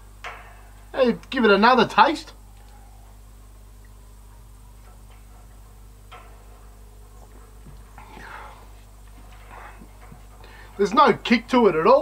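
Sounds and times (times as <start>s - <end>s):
low steady hum: 0.0s - 12.0s
breathy exhale: 8.0s - 8.8s, 10.4s - 10.8s.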